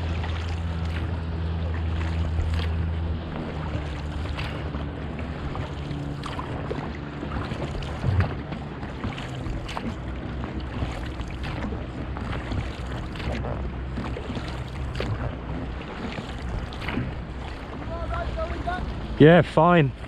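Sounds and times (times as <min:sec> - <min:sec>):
motorboat engine humming: 0:00.0 - 0:20.0
water sloshing around oars: 0:00.0 - 0:20.0.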